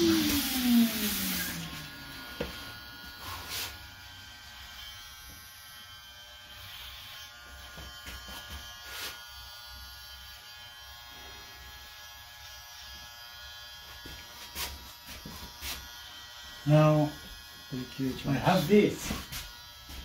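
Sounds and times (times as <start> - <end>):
electric hair clipper buzzing: 0.0 - 20.0.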